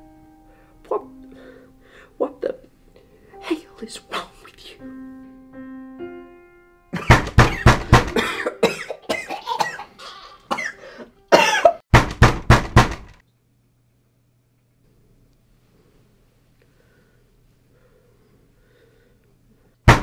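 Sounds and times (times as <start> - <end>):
person coughing hard: 7.0 - 11.8.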